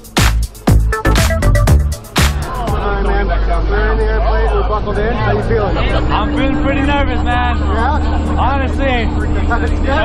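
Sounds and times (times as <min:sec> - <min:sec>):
people chattering: 0:01.4 - 0:10.0.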